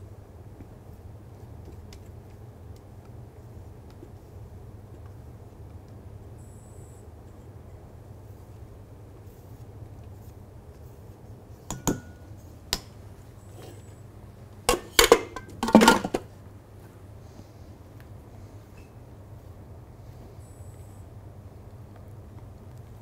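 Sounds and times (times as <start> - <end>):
bowl clatter: 14.7 - 16.3.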